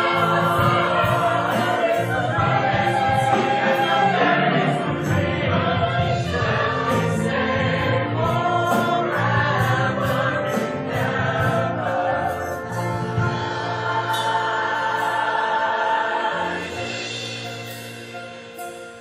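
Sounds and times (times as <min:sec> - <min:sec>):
choir singing: 0:00.0 - 0:17.4
instrumental accompaniment: 0:00.0 - 0:19.0.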